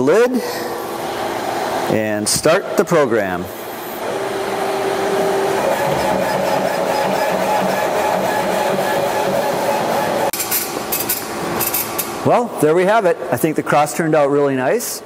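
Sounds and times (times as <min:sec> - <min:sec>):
laser engraver running: 0:03.6 - 0:10.3.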